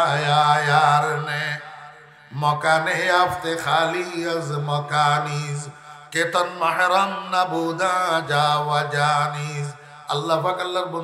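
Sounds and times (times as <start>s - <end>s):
man chanting through microphones: 0.0s - 11.0s.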